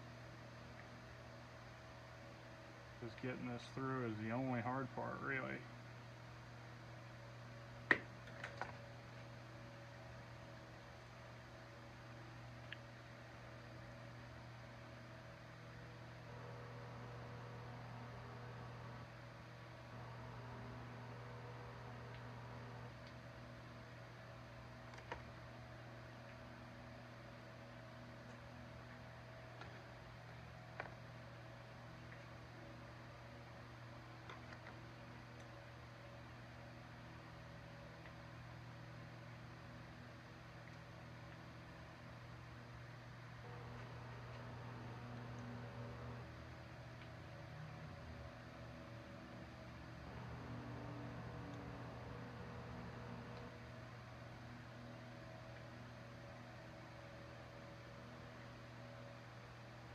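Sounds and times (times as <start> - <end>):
low hum: 0.0 - 59.9.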